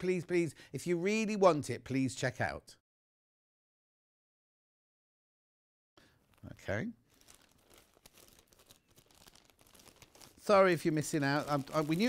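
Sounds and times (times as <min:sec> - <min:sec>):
plastic bag crinkling: 0:06.2 - 0:12.0.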